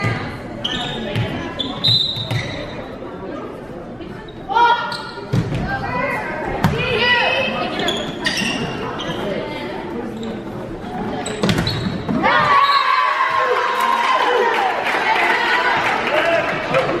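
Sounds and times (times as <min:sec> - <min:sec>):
people shouting: 0:12.2 - 0:16.4
crowd cheering: 0:12.2 - 0:17.0.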